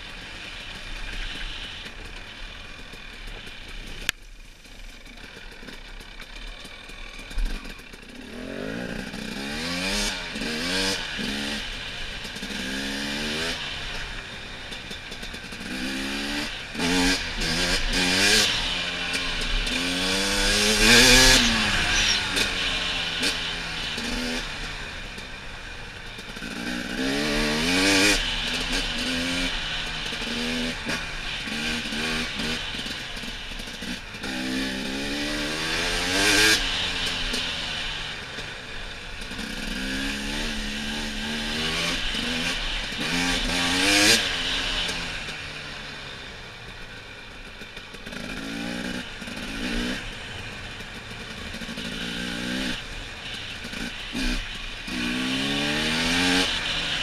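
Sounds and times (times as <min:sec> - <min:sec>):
dirt bike engine revving: 0:00.0 - 0:04.1, 0:04.7 - 0:57.0.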